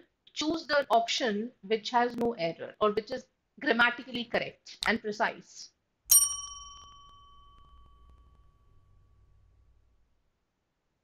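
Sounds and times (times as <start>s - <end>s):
bell-like chime ringing: 6.1s - 9.9s.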